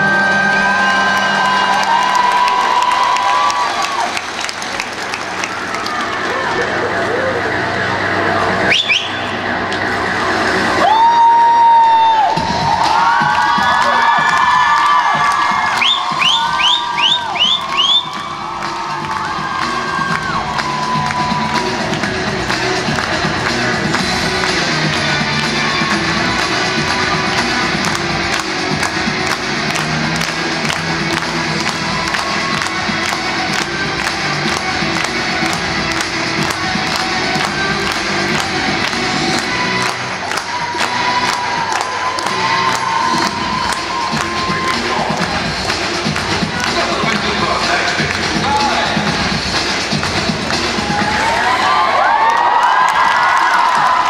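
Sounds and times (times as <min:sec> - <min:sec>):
crowd cheering: 0:00.0 - 0:54.0
music over sound system: 0:00.0 - 0:54.0.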